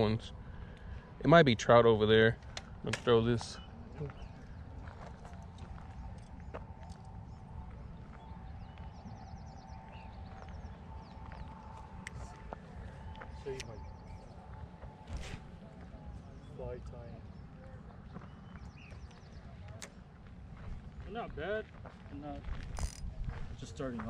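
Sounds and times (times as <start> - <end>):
faint steady hum: 0.0 - 21.1
wind rumbling on microphone: 22.4 - 23.8
fishing reel clicks and taps: 22.8 - 23.0.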